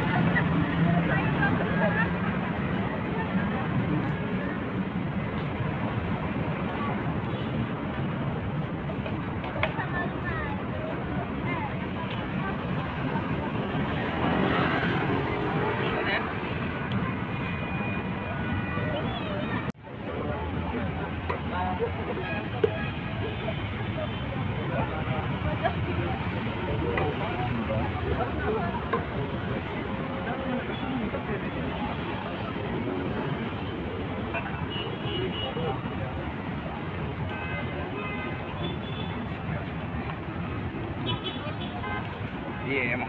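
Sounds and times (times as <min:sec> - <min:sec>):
passers-by talking: 0:00.0 - 0:43.0
traffic noise: 0:00.0 - 0:43.0.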